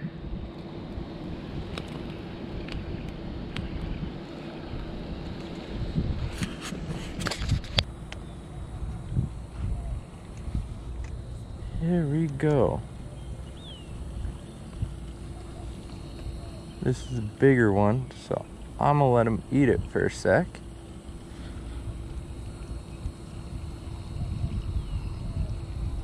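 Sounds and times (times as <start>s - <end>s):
wind on microphone: 0.0s - 18.6s, 21.6s - 26.0s.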